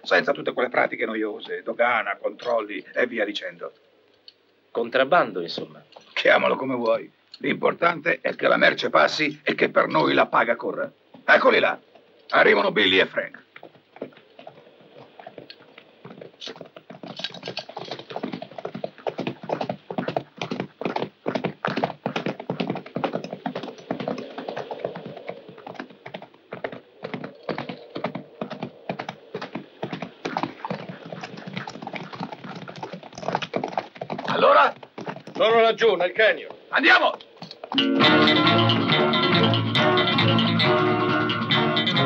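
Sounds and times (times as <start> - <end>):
hoofbeats of galloping horses: 11.1 - 37.9.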